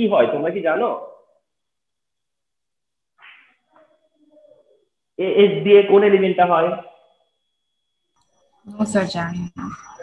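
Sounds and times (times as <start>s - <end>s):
man speaking: 5.2s - 7.0s.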